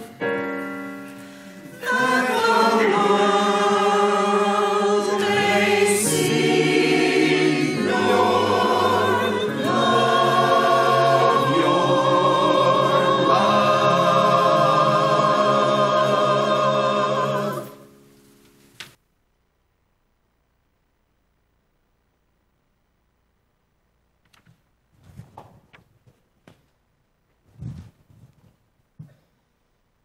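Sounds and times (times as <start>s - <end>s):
choir singing a hymn: 1.7s - 18.0s.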